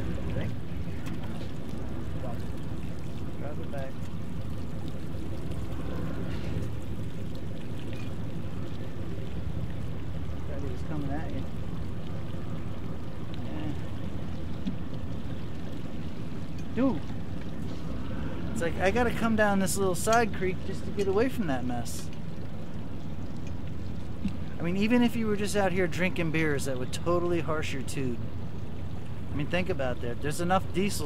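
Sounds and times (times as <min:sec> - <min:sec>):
boat engines idling: 0:00.0 - 0:31.0.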